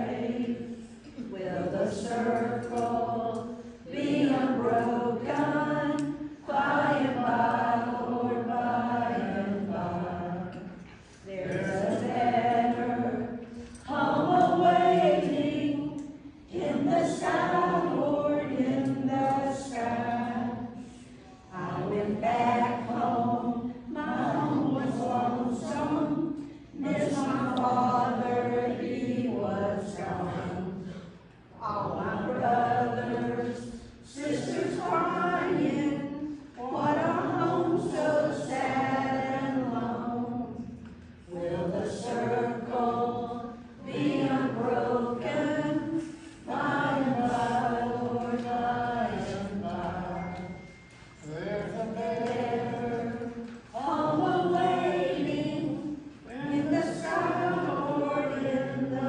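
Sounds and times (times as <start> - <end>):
woman singing unaccompanied: 1.2 - 10.3.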